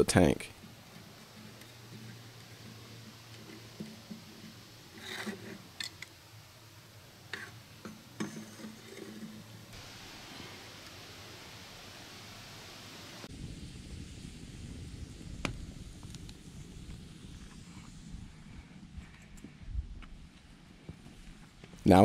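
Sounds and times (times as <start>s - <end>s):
campfire rumble: 0.0s - 22.0s
steady hiss: 0.0s - 22.0s
campfire pops and crackles: 0.6s - 6.2s, 13.2s - 18.2s.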